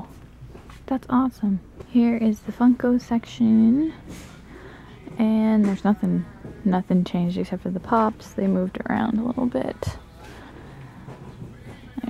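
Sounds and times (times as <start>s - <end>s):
store background noise: 0.0s - 12.0s.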